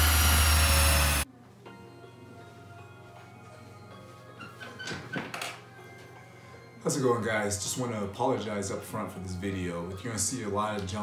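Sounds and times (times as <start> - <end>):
quiet background music: 1.2 - 11.0.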